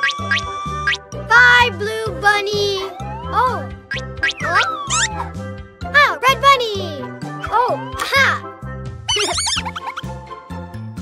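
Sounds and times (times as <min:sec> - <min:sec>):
cartoon gliding whistles: 0:00.0 - 0:01.0, 0:03.9 - 0:05.3, 0:09.1 - 0:10.1
light children's music: 0:00.0 - 0:11.0.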